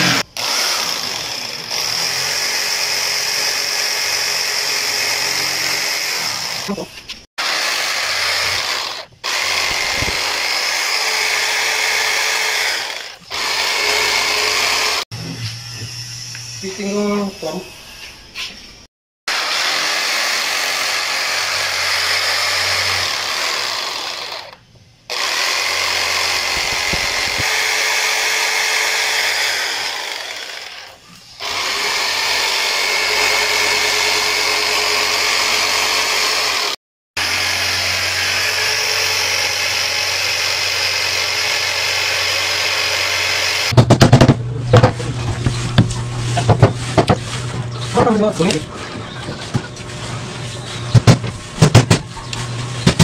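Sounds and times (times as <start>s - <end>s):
electric jigsaw cutting wood: 0.0s - 17.2s, 19.3s - 43.8s.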